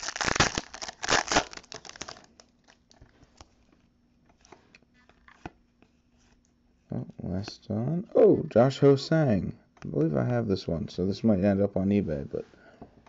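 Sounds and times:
foil wrapper crinkling: 0:00.0 - 0:03.0.

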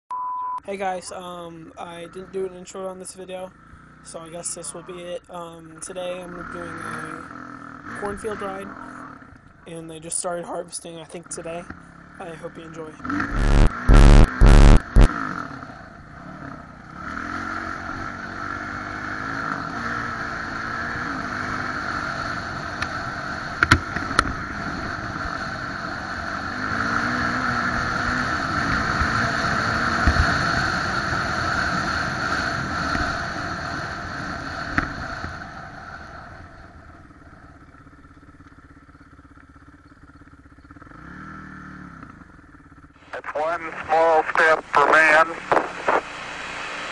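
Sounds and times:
dirt bike engine revving: 0:05.9 - 0:09.4, 0:11.3 - 0:38.8, 0:39.6 - 0:46.9.

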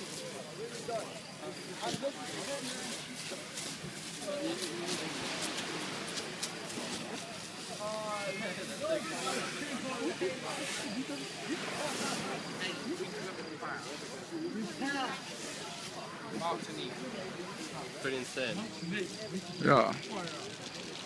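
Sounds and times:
fire hoses spraying water: 0:00.0 - 0:21.0
indistinct chatter of onlookers: 0:00.0 - 0:21.0.

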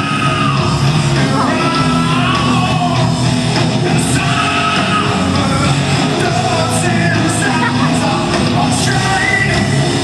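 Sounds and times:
rock band playing live: 0:00.0 - 0:10.0.

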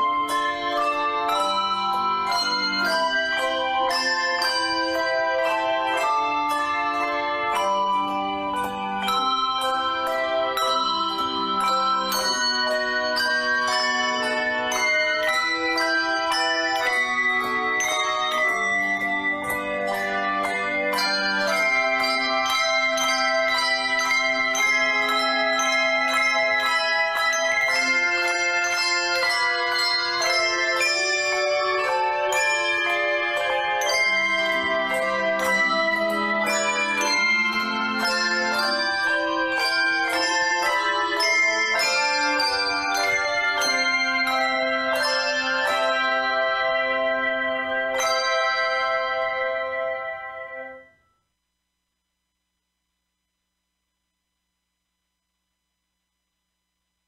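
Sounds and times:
bells ringing slow melody: 0:00.0 - 0:51.0.

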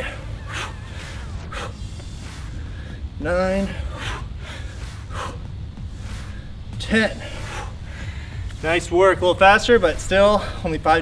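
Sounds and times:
person breathing forcefully: 0:00.0 - 0:08.6, 0:10.3 - 0:10.7
low background rumble: 0:00.0 - 0:11.0.

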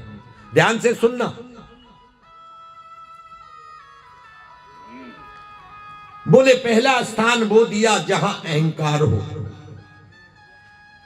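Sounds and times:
harmonium playing sustained notes: 0:00.0 - 0:02.8, 0:03.6 - 0:10.9.

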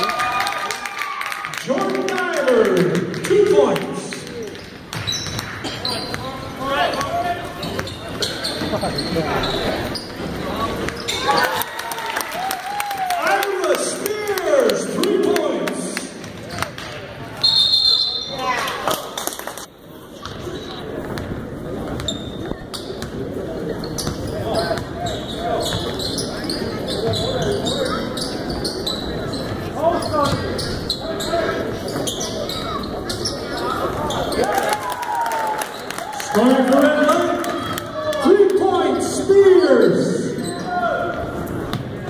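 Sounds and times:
crowd chatter: 0:01.6 - 0:42.0.

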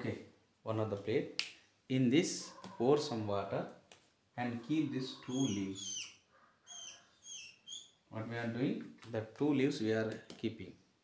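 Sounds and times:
small bird chirping: 0:04.6 - 0:08.0.

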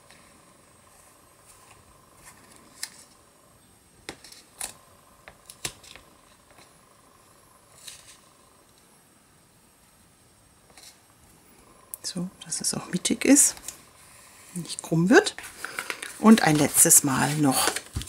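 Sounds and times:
paper card rustling: 0:15.4 - 0:18.0.

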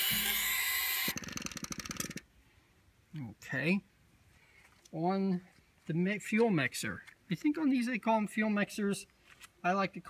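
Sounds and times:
buzz coil vibrator chattering: 0:00.0 - 0:02.2.

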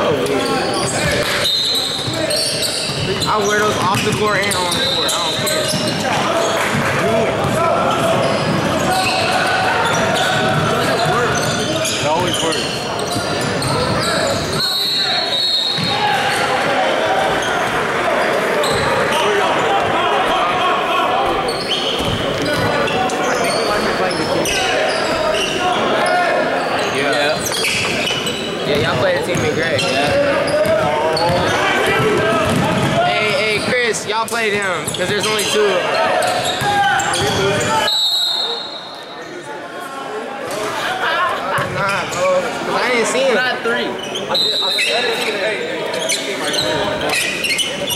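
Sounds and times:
chatter and calls of people: 0:00.0 - 0:47.9
basketball bouncing on wooden floor: 0:30.7 - 0:33.0.

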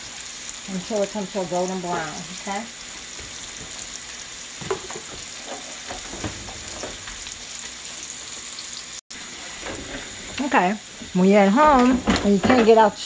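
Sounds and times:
fries frying in oil: 0:00.0 - 0:13.0
onions sizzling in a skillet: 0:00.0 - 0:13.0.

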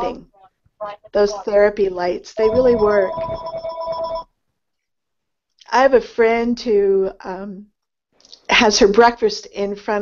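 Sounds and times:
two-pitch electronic tone: 0:02.4 - 0:04.2.

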